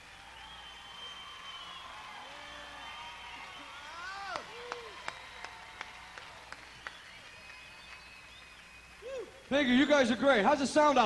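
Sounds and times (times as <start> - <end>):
rhythmic handclaps: 3.0 - 9.6.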